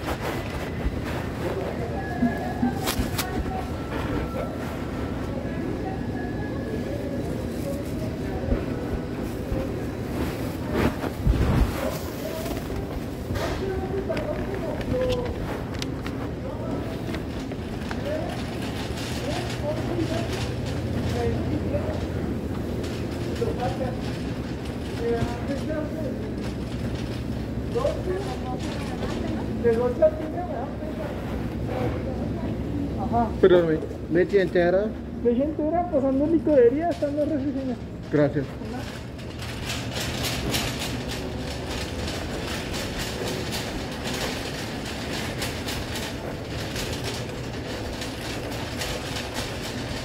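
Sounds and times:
indistinct shoppers' voices: 0.0 - 50.0.

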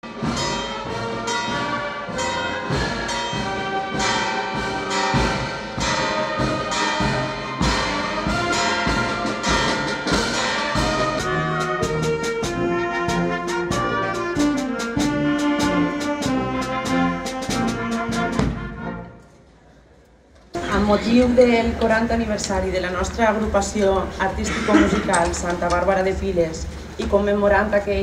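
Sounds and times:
steady drum beat: 0.0 - 18.7
wind band playing: 0.0 - 19.2.

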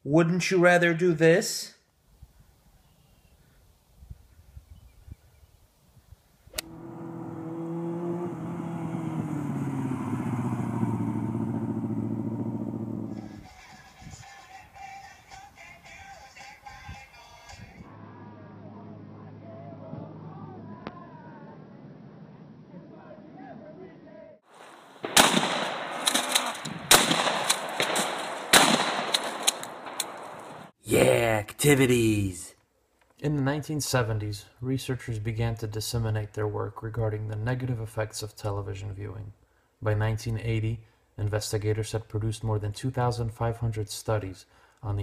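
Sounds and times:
motorcycle engine riding along: 6.6 - 13.4
music: 13.4 - 21.0
faint gunshot cracks: 25.0 - 30.7
loud gunshots: 25.0 - 30.7
sharp click: 29.1 - 30.5.

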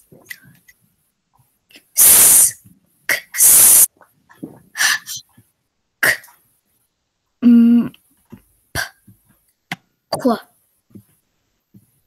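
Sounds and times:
girl reciting phonogram sounds: 7.4 - 8.0, 10.1 - 10.6.

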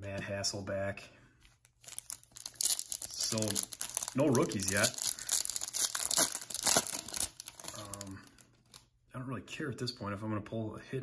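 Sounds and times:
foil wrapper crinkling: 1.7 - 8.9.

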